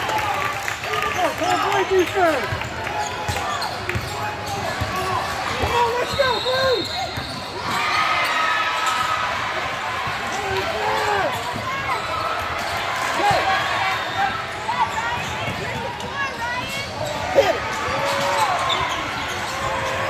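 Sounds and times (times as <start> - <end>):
voices in gym: 0.0 - 20.0
sneakers squeaking: 1.2 - 20.0.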